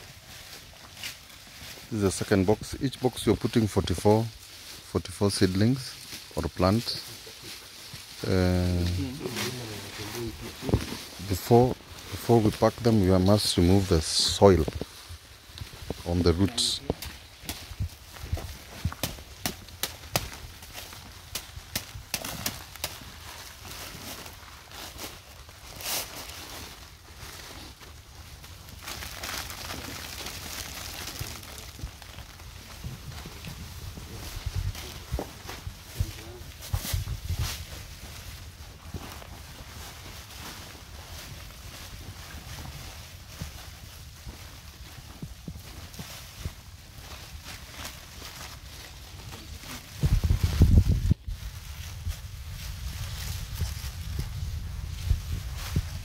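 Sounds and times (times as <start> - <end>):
footsteps on soil: 6.0 - 25.6.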